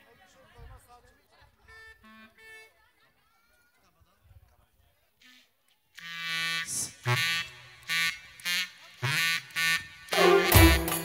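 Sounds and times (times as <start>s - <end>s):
clarinet held notes: 10.1s - 11.0s.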